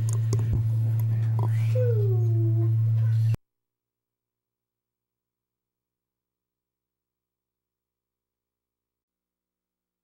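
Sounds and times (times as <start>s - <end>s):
low electrical hum: 0.0s - 3.4s.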